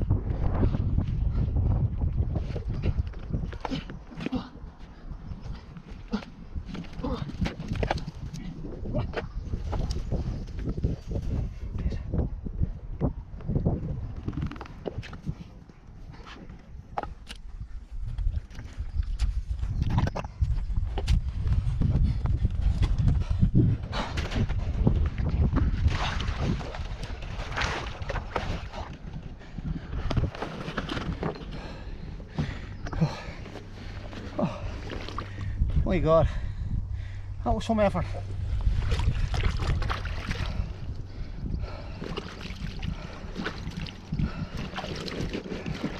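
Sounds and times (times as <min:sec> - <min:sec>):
wading through mud: 0:23.9 - 0:35.8, 0:37.2 - 0:45.9
man breathing hard and grunting: 0:31.5 - 0:37.4, 0:40.3 - 0:45.0.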